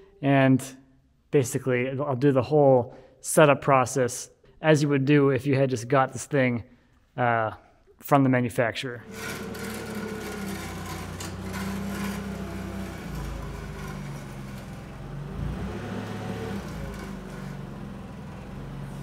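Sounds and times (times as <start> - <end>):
forklift engine running: 9.0 - 19.0.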